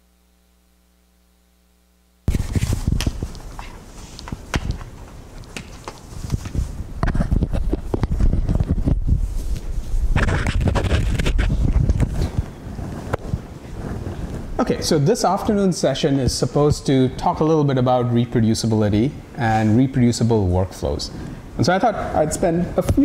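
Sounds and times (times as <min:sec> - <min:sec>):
microphone rubbing on clothing: 0:02.2 - 0:14.9.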